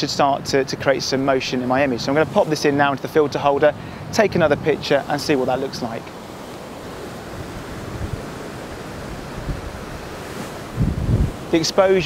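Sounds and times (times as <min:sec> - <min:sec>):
surf washing against rocks: 0:00.0 - 0:12.0
wind buffeting microphone: 0:01.2 - 0:12.0.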